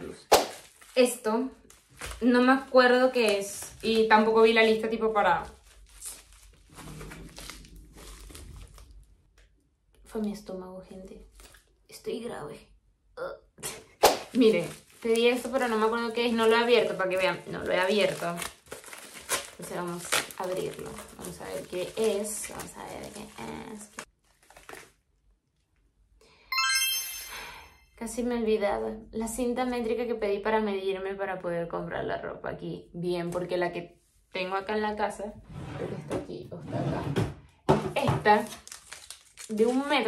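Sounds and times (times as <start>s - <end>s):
plastic packet crinkling: 0.5s - 9.1s, 14.2s - 25.0s, 38.3s - 40.0s
bright electronic chime: 26.5s - 27.9s.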